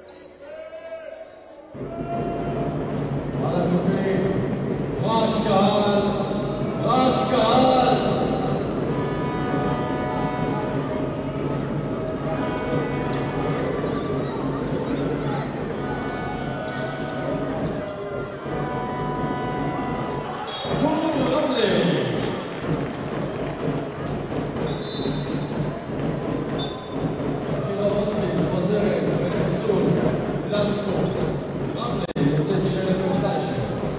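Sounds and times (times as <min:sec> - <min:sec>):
crowd voices: 0:00.0 - 0:33.9
arena music: 0:01.8 - 0:33.9
referee whistle blasts: 0:18.6 - 0:20.9, 0:24.7 - 0:25.5.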